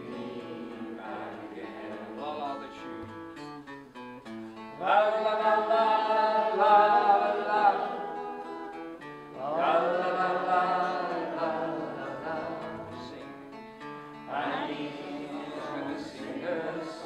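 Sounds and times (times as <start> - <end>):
strummed acoustic guitar: 0.0 - 17.0.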